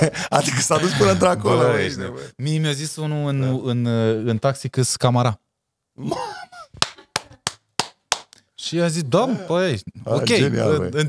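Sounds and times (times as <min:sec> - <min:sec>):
person laughing: 0:06.0 - 0:07.4
hand claps: 0:06.8 - 0:08.4.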